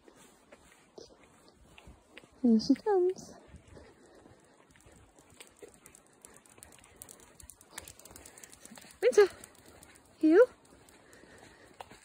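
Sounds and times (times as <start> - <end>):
footsteps on asphalt: 0.0 - 12.0
scuffing clicks on asphalt: 0.0 - 12.0.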